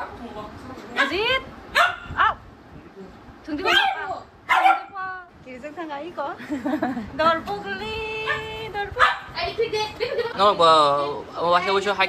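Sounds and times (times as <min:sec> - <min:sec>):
dog barking: 0:01.0 - 0:02.4, 0:03.7 - 0:05.0, 0:08.3 - 0:09.3.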